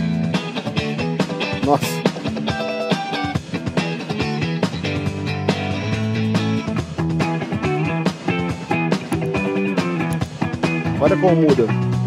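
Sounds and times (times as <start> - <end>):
electric guitar riff: 0.0 - 12.0.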